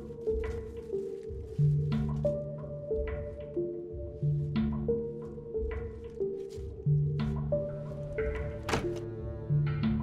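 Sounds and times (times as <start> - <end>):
suspenseful film score: 0.0 - 10.0
heavy thunk: 8.6 - 9.1.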